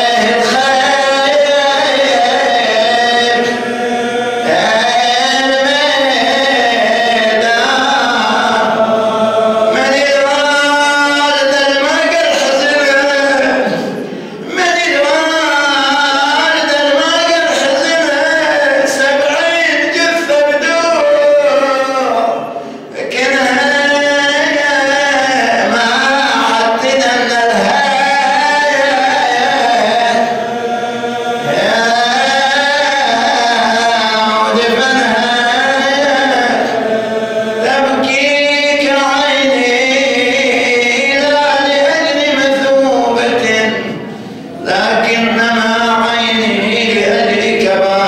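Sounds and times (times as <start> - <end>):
man chanting a lament: 0.0 - 48.0.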